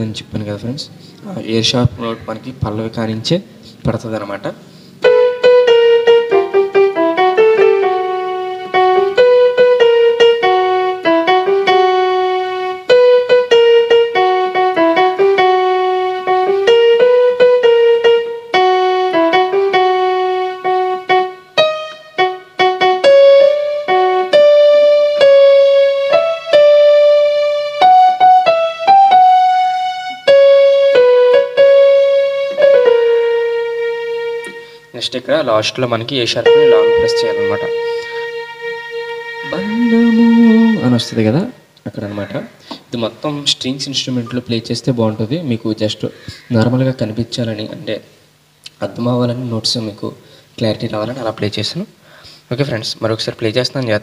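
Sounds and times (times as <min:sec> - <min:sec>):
electronic keyboard melody: 0:05.0 - 0:34.9, 0:36.3 - 0:41.5.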